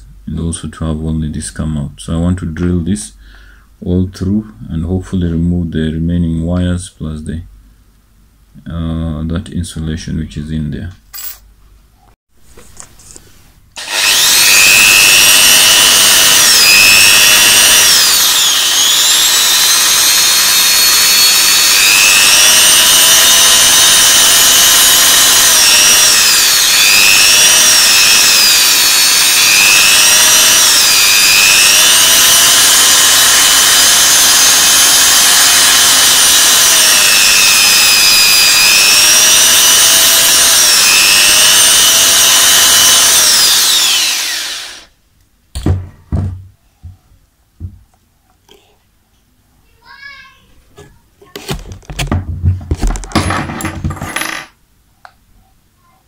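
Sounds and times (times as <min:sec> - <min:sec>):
electric drill whining: 0:13.8 - 0:44.9.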